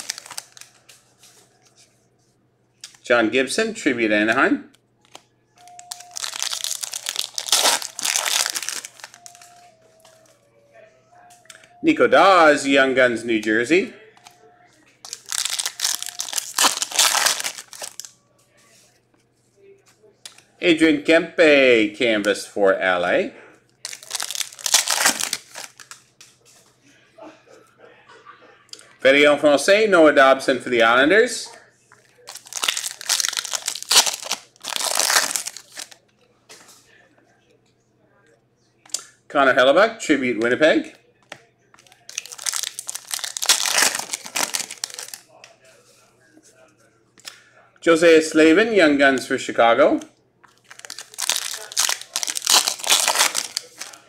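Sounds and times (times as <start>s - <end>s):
foil wrapper crinkling: 0.0s - 1.0s, 5.1s - 9.7s, 15.0s - 18.1s, 23.9s - 26.0s, 32.2s - 36.0s, 41.8s - 45.3s, 50.5s - 54.0s.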